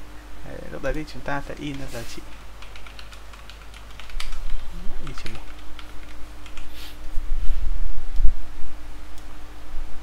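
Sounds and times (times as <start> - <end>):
computer keyboard typing: 1.5 - 6.7.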